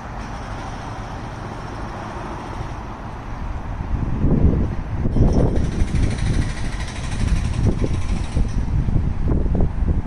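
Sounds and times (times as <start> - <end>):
train running low rumble: 0.0 - 10.0.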